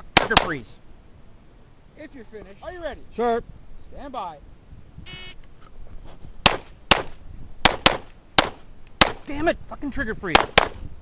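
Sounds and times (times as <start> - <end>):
pistol shots: 0.1 - 0.6, 6.4 - 9.3, 10.3 - 10.8.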